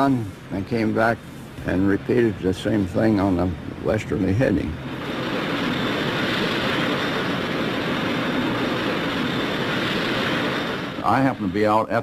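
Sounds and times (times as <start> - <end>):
jet engines rushing: 0.0 - 12.0.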